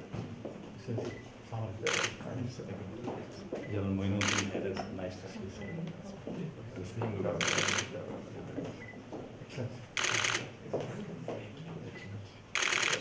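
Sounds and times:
murmur of voices: 0.8s - 13.0s
camera shutters firing in bursts: 1.8s - 2.2s, 4.2s - 4.5s, 7.4s - 7.9s, 10.0s - 10.5s, 12.6s - 13.0s.

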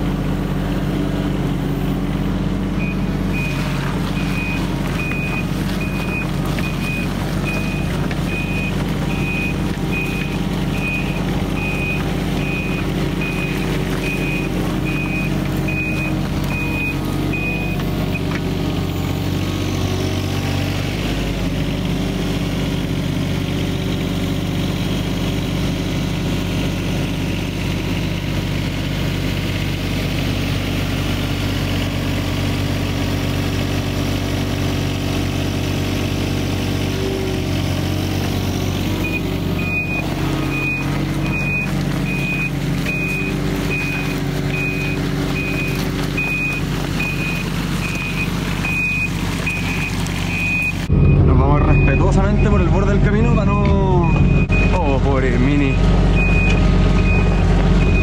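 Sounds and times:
excavator diesel engine running: 0.0s - 58.0s
travel alarm beeping: 2.8s - 18.2s, 39.0s - 52.8s, 54.0s - 54.9s, 56.2s - 58.0s.

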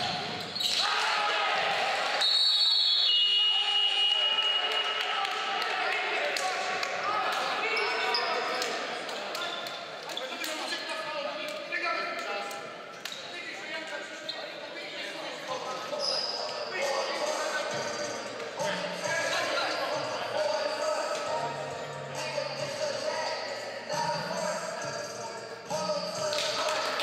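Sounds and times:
people shouting: 0.7s - 2.2s.

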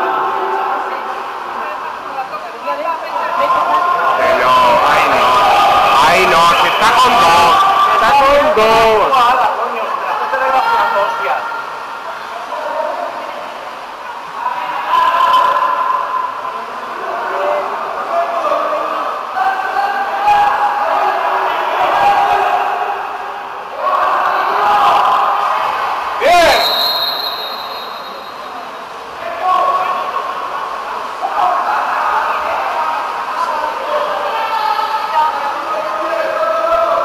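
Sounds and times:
voices shouting in pool hall: 0.0s - 37.0s
thin high tone: 26.5s - 28.7s.

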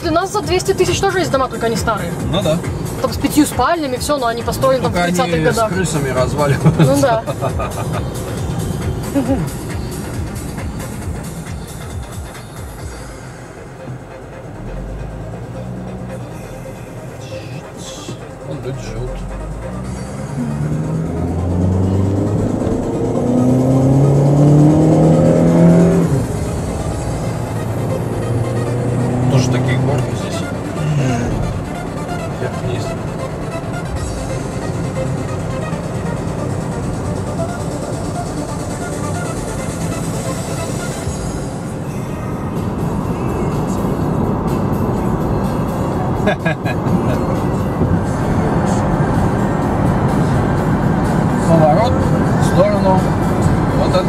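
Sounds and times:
car engine accelerating: 0.0s - 54.0s
road noise inside car: 0.0s - 54.0s.

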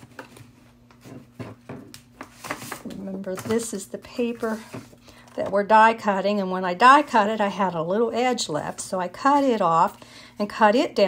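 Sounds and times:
paper tapping and rustling: 0.0s - 3.7s
low steady hum: 0.0s - 11.0s.

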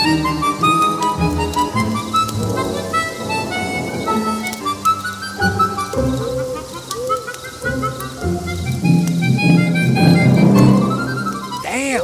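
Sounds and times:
harmonica playing: 0.0s - 12.0s.

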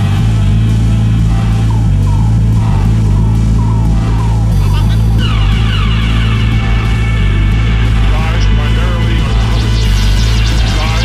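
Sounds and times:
falling synth tones: 0.0s - 11.0s
heavy sustained bass: 0.0s - 11.0s.

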